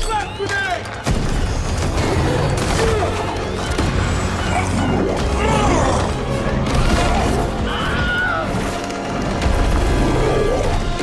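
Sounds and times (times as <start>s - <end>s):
dramatic music: 0.0s - 11.0s.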